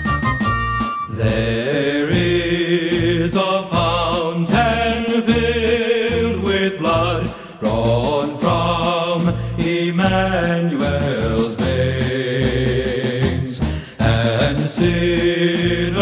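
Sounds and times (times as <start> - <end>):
person singing: 1.1 - 16.0.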